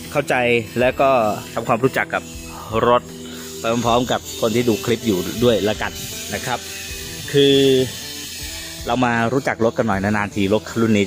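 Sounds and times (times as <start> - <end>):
man speaking: 0.1 - 6.6.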